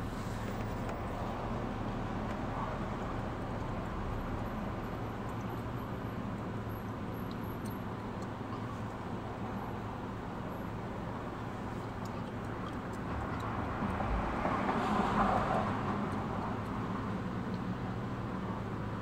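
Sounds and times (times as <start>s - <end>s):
car interior road and engine noise: 0.0s - 19.0s.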